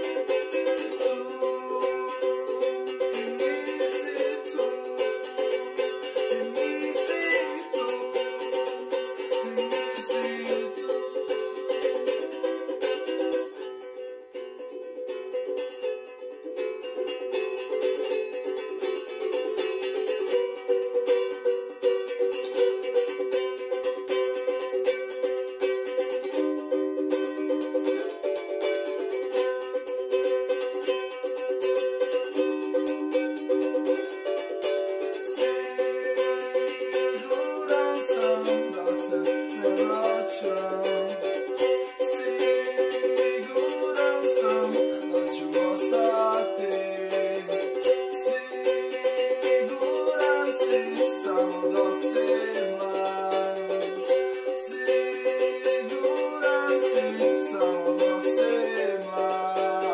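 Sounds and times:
man singing: 0.0s - 13.6s, 30.4s - 59.9s
ukulele strumming chords: 0.0s - 59.9s.

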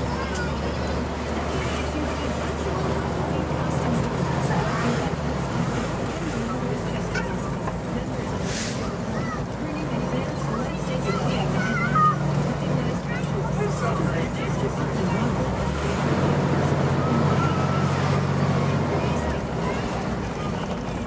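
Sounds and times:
fire engine diesel engine running: 0.0s - 21.0s
short hiss: 8.4s - 8.9s.

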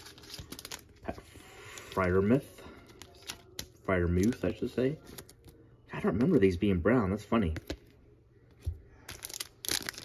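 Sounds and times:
foil wrapper crinkling and tearing: 0.0s - 2.3s, 2.9s - 4.5s, 9.0s - 10.0s.

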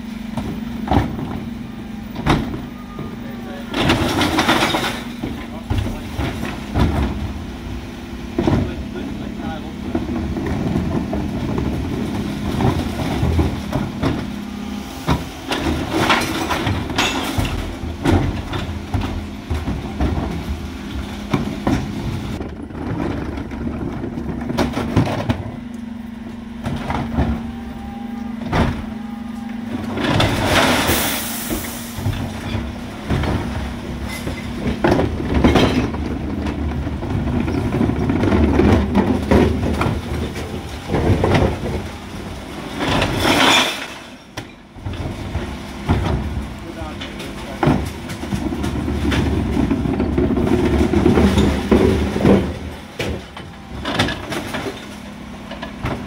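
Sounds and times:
refuse truck engine running: 0.0s - 56.0s
bins knocking and clattering: 0.2s - 25.8s, 26.5s - 29.0s, 29.6s - 56.0s.

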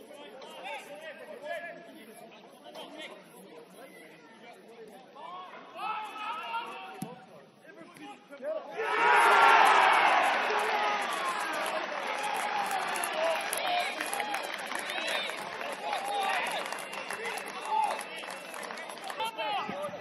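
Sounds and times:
crowd shouting and cheering: 8.7s - 20.0s.

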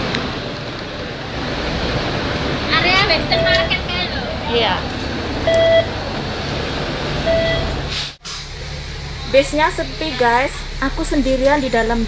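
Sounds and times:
bus engine rumble: 0.0s - 12.0s
card reader beep: 5.5s - 5.9s, 7.3s - 7.7s.

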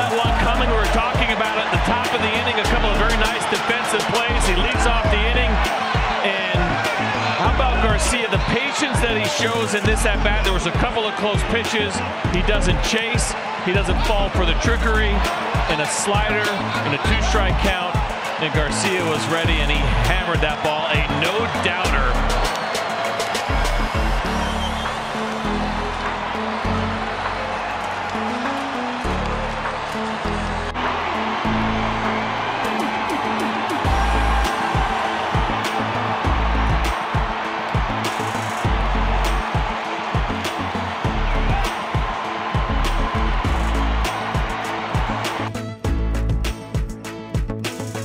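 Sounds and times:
music with pulsing bass line: 0.0s - 3.4s, 4.3s - 10.8s, 13.8s - 22.5s, 23.4s - 27.7s, 28.9s - 48.0s
crowd cheering: 0.0s - 45.6s.

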